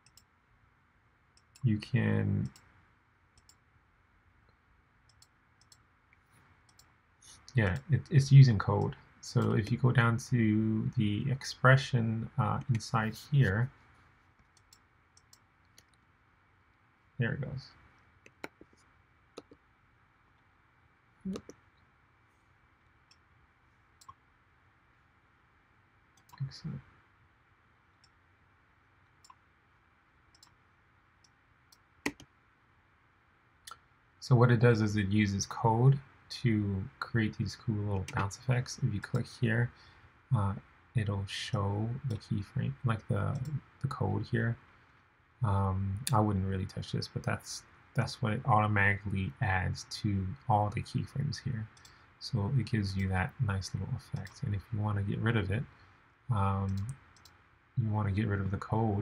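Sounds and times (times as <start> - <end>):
computer mouse clicking: 0.0 - 0.3, 3.4 - 3.6, 5.1 - 5.8, 6.7 - 6.9, 14.3 - 16.1, 18.2 - 18.8, 19.4 - 19.6, 29.2 - 29.4, 30.3 - 30.6, 31.2 - 32.3, 56.7 - 57.4
faint computer mouse clicks: 30.3 - 30.6.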